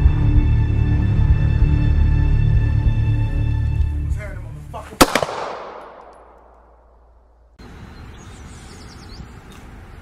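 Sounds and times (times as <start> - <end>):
outdoor background noise: 0.0 - 10.0
gunshots with echo: 5.0 - 7.0.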